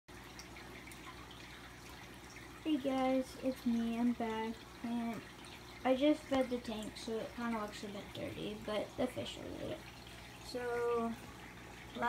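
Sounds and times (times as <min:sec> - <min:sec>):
low steady hum: 0:00.1 - 0:12.0
water trickling in fish tank: 0:00.1 - 0:12.0.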